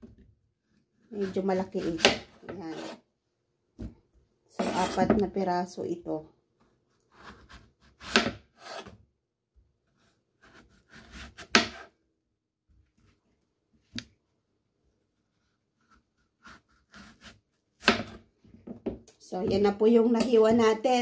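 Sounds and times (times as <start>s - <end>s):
knife slicing through gourd: 1.2s - 3.0s, 4.6s - 5.0s, 7.1s - 8.9s, 10.4s - 11.9s.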